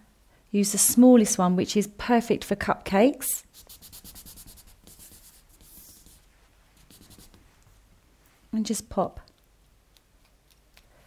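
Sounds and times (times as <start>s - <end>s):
fingers rubbing sugar paste: 3.5s - 6.2s, 6.8s - 7.4s.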